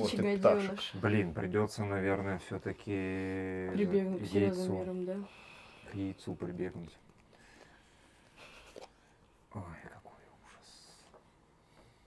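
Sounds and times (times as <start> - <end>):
faint breaths or rustles: 7.3 - 9.4.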